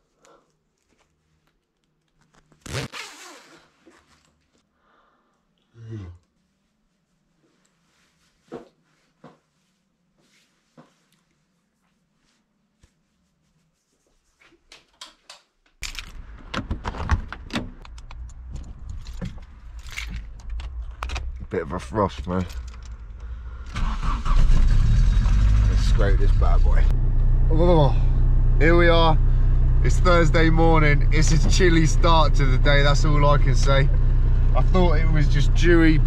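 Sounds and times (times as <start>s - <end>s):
zipper pulled up: 2.4s - 4.3s
loud low rumble inside a car: 15.9s - 36.0s.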